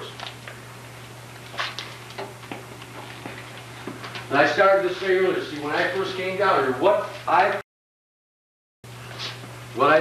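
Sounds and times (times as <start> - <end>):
low electrical hum: 0.0 - 7.6, 8.9 - 10.0.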